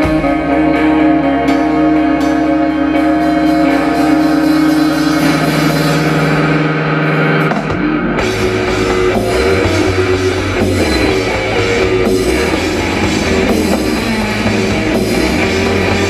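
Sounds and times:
drums: 0.0s - 16.0s
electric guitars and bass: 0.0s - 16.0s
live rock band playing: 0.0s - 16.0s.

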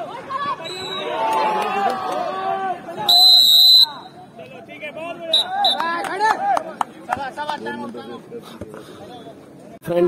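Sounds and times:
referee's whistle blast: 0.6s - 1.1s, 3.1s - 4.1s.

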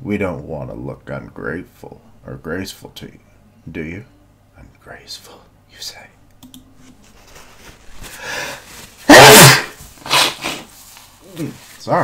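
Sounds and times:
man sneezing loudly: 9.0s - 10.7s.

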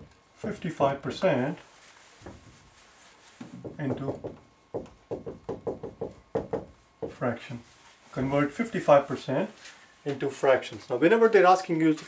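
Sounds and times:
marker tapping on whiteboard: 3.4s - 7.2s.

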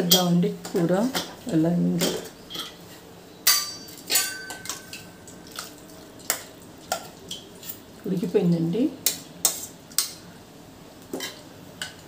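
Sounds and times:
metal spoon clinking on pot: 3.4s - 5.1s.

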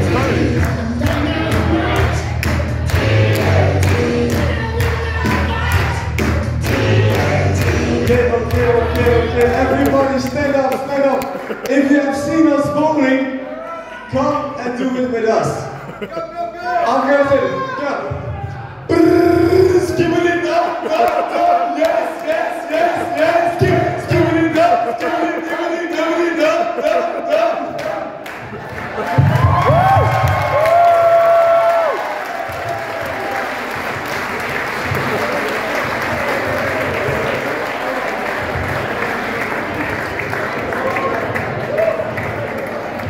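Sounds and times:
dance music with singing: 0.0s - 10.9s, 18.1s - 28.2s
crowd applause: 6.6s - 12.1s, 27.8s - 43.0s
crowd cheering: 19.8s - 43.0s.

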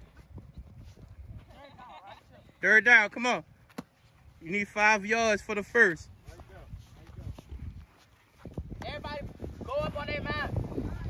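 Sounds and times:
footsteps running on grass: 3.9s - 9.9s.

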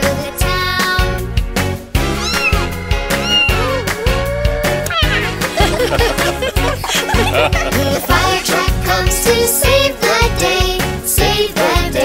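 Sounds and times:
upbeat children's instrumental music: 0.0s - 12.0s
cat meowing: 2.0s - 5.5s.

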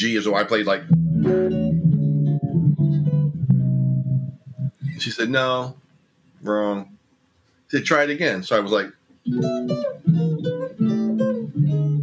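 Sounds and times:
guitar chords ringing: 0.8s - 5.1s, 9.2s - 12.0s.

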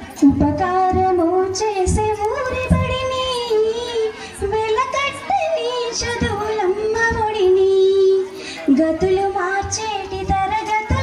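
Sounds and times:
woman singing into a microphone: 0.0s - 11.0s.

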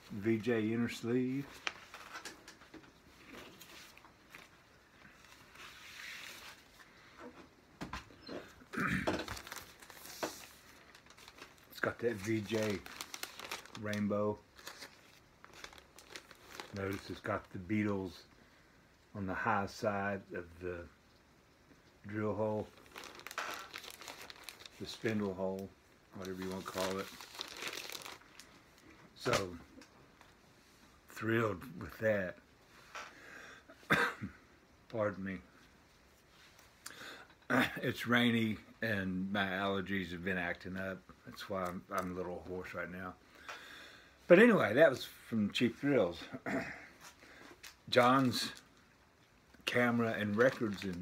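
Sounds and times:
paper sleeve rustling: 1.4s - 2.3s, 5.1s - 6.8s, 9.3s - 17.7s, 22.5s - 28.5s, 49.7s - 51.0s.

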